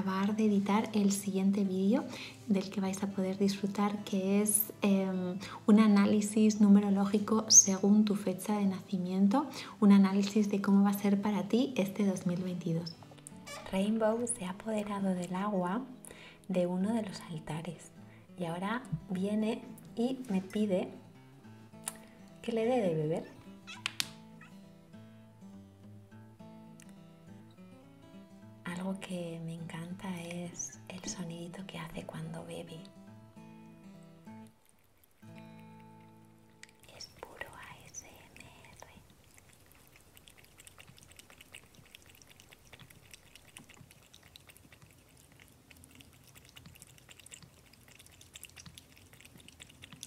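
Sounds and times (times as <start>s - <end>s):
soft background music: 0.0s - 43.7s
cat meowing: 23.2s - 24.6s
cat lapping water: 34.4s - 50.0s.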